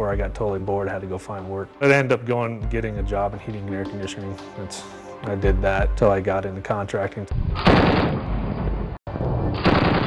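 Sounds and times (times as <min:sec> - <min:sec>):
machine gun firing: 0:09.6 - 0:10.0.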